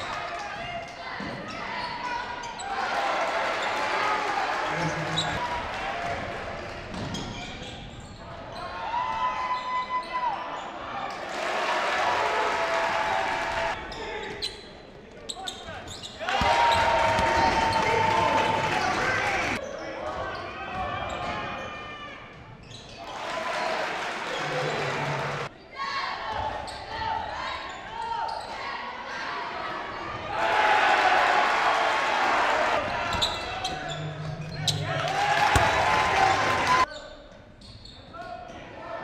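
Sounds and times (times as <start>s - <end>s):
players and spectators calling out: 0.0s - 6.3s, 7.0s - 37.1s.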